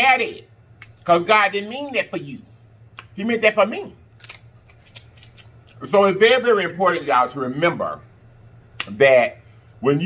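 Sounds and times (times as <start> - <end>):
person speaking: 0.0 - 4.1, 5.3 - 8.2
chewing and mouth smacking: 4.2 - 5.8.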